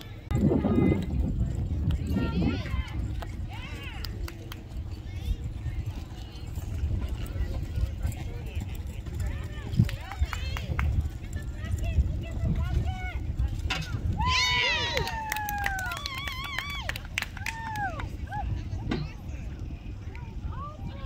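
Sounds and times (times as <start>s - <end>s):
low rumble: 0.0s - 21.0s.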